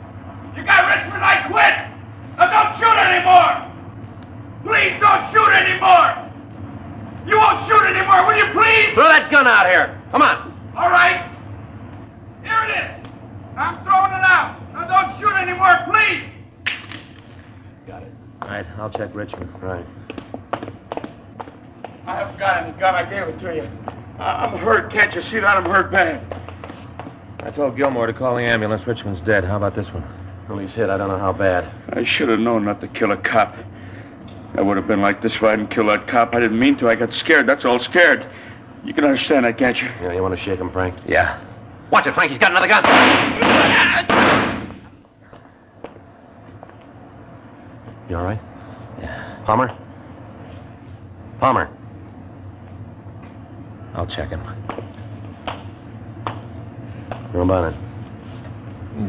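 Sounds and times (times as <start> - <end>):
footsteps on hard surface: 18.4 - 22.1, 26.3 - 27.6
burst of gunfire: 42.8 - 44.8.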